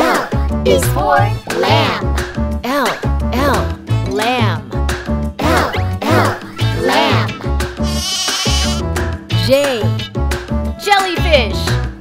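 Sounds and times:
cartoon lamb bleating: 0:07.8 - 0:08.8.

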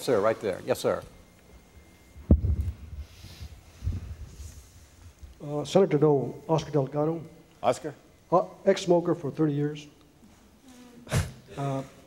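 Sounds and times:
microphone handling thumps: 0:02.2 - 0:04.4.

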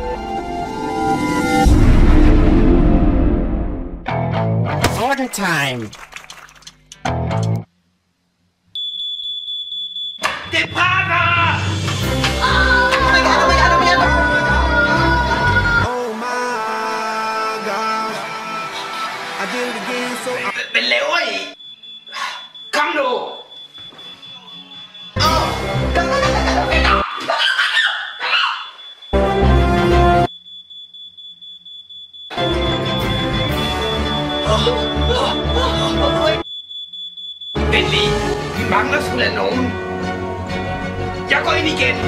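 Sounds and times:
smoke alarm tone: 0:08.8 - 0:10.9, 0:20.5 - 0:25.7, 0:27.9 - 0:38.1.

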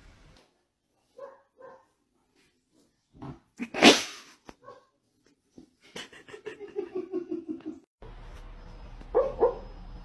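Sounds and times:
puppy yip: 0:04.6 - 0:04.9, 0:09.1 - 0:09.6.

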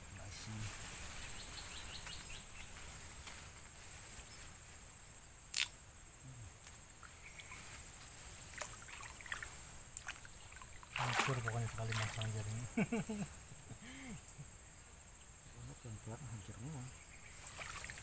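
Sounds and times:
water sloshing: 0:07.0 - 0:12.8, 0:17.3 - 0:18.0.

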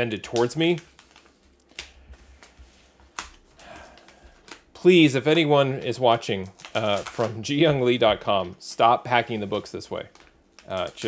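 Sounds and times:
envelope rustling: 0:00.5 - 0:05.2, 0:05.9 - 0:08.0.

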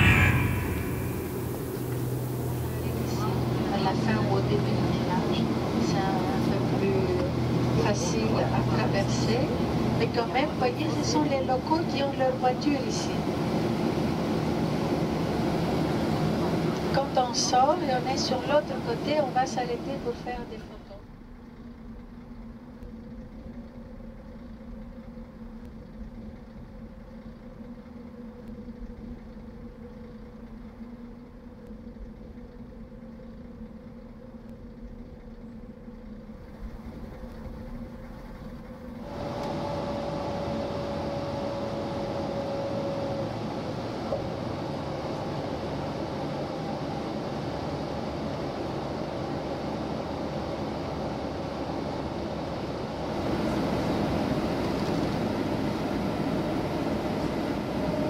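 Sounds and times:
road noise: 0:00.0 - 0:13.8
hissy rush with whine: 0:00.0 - 0:20.8
vehicle engine hum: 0:00.0 - 0:58.0.

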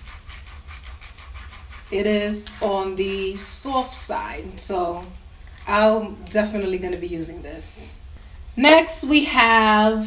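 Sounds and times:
fingers running across brush bristles: 0:00.0 - 0:05.7.

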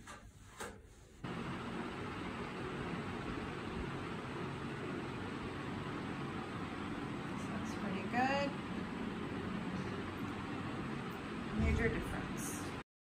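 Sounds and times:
low hum with hiss: 0:01.1 - 0:12.8.

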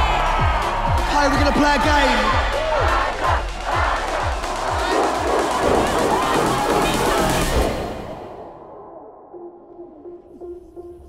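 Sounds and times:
crowd shouting: 0:00.0 - 0:08.1
club dance music: 0:00.0 - 0:08.2.

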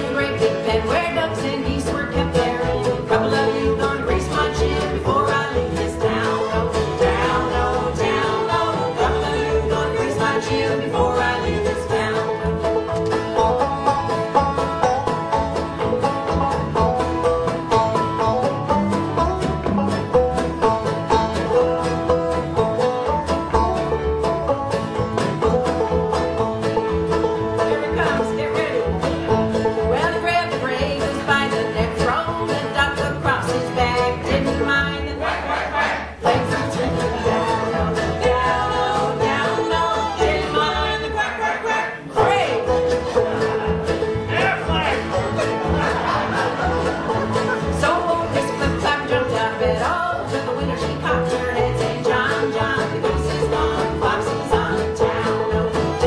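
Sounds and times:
acoustic guitar: 0:00.0 - 0:56.0
banjo picking: 0:00.0 - 0:56.0
upright bass: 0:00.0 - 0:56.0.

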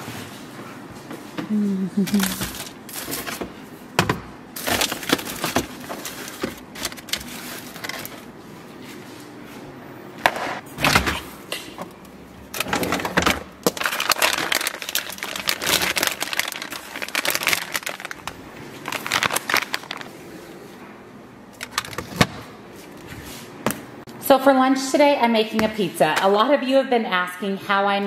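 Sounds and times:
plastic bags crinkling: 0:02.0 - 0:03.5, 0:04.6 - 0:08.3, 0:12.6 - 0:20.2.

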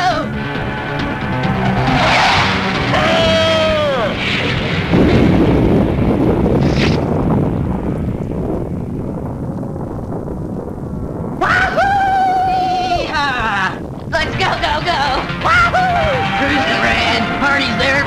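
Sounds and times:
explosion with rumble: 0:00.3 - 0:15.2
cartoon crash: 0:01.4 - 0:05.5.

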